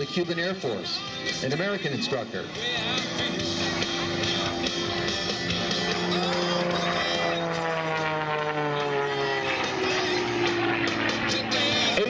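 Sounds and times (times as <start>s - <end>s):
plane engine and propeller droning: 0.0s - 12.0s.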